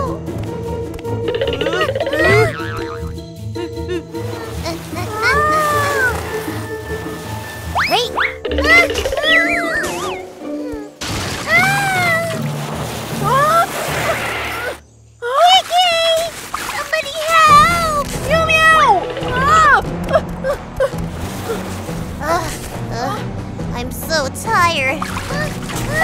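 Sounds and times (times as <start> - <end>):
cartoon music with pulsing beat: 1.0 - 4.2, 8.1 - 11.0, 18.4 - 20.1
water splashing: 1.3 - 3.1, 4.1 - 14.8, 15.5 - 22.9, 23.9 - 26.0.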